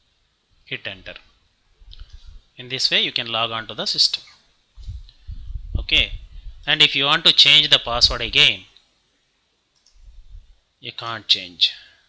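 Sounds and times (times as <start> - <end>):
dull low bump: 4.8 - 6.8, 10.0 - 10.5
faint computer mouse clicks: 9.8 - 10.0.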